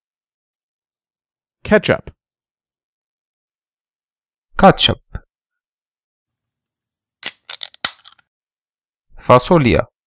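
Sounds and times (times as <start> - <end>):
rattle of sharp clicks: 7.2 - 8.2.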